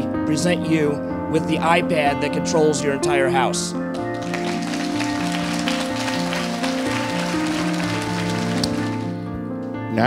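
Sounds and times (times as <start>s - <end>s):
background music slow notes: 0.0s - 10.0s
crowd applauding: 3.9s - 9.2s.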